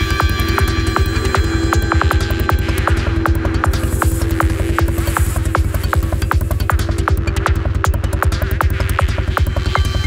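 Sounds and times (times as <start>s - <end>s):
rolling bassline: 0.0s - 10.0s
steady held drone: 0.0s - 10.0s.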